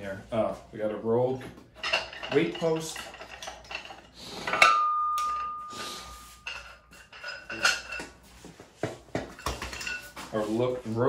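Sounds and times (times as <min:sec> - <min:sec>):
metal gym equipment clinking: 0:01.7 - 0:08.2, 0:09.3 - 0:10.2
ringing metal clang: 0:04.5 - 0:08.1.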